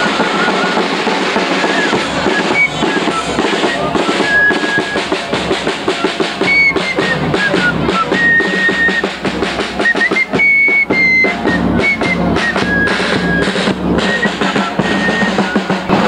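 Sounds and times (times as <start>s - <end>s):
fife playing march melody: 0.0s - 16.0s
bass drum beating: 0.9s - 16.0s.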